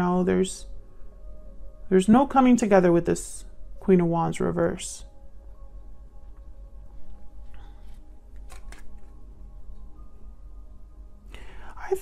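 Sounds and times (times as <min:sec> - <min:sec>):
faint background music tones: 0:00.0 - 0:12.0
person speaking: 0:01.9 - 0:05.1
breathy intake of breath: 0:11.3 - 0:11.8.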